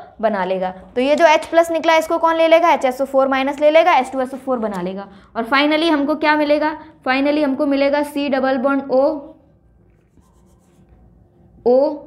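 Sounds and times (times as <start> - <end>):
woman speaking: 0.0 - 9.4, 11.7 - 12.0
marker drawing on whiteboard: 9.8 - 11.5.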